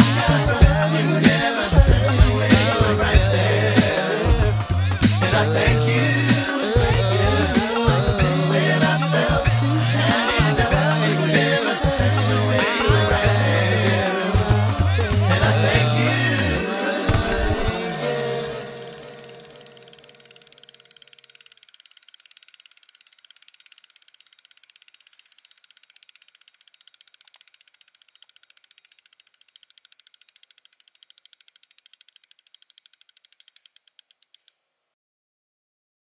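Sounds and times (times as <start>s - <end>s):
bicycle freewheel hub clicking: 17.3s - 34.6s.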